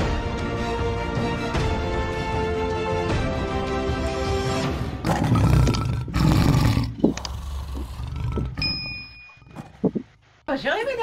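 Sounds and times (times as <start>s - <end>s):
lion roaring: 5.0s - 8.6s.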